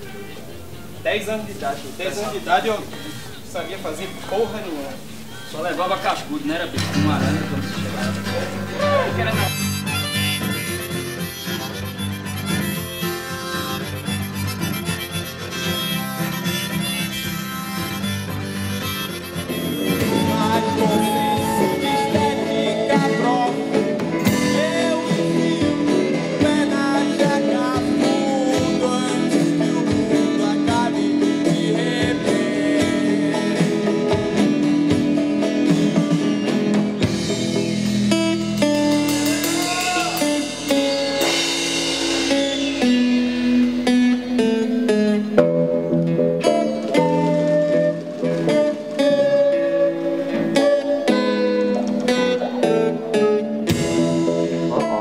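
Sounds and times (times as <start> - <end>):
band playing: 0.0 - 55.0
guitar: 0.0 - 55.0
person singing: 19.5 - 35.4, 38.7 - 42.9, 46.4 - 55.0.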